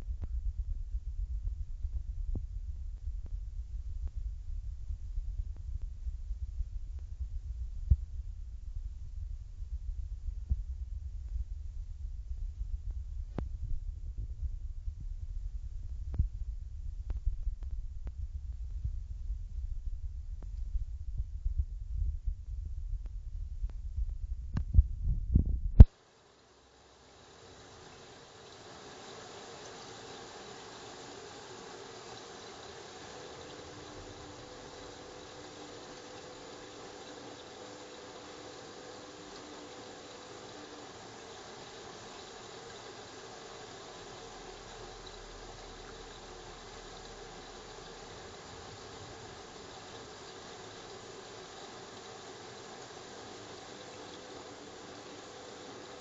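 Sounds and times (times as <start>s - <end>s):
faint steady hiss: 0.0s - 56.0s.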